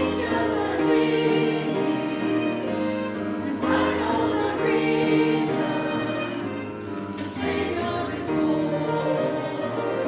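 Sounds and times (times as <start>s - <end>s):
grand piano accompaniment: 0.0s - 10.0s
mixed choir singing: 0.0s - 10.0s.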